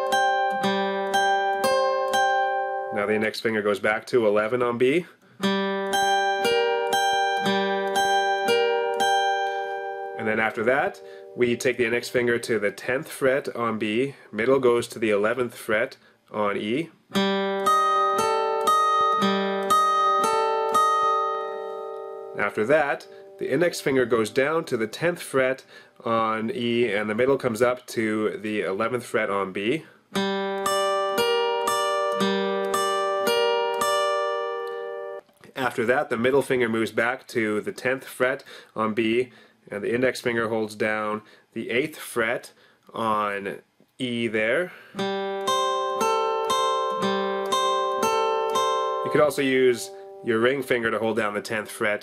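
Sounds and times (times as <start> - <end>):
acoustic guitar arpeggio: 0.0 - 3.3, 5.4 - 12.3, 17.1 - 24.6, 30.1 - 35.8, 45.0 - 50.8.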